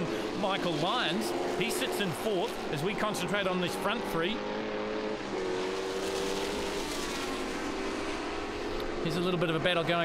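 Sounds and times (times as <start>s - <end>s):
racing car engines at high revs: 0.0s - 10.0s.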